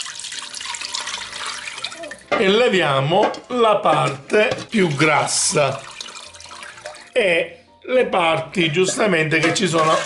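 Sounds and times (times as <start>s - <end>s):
liquid pouring through strainer: 0.0s - 2.3s, 4.7s - 7.2s, 9.4s - 10.0s.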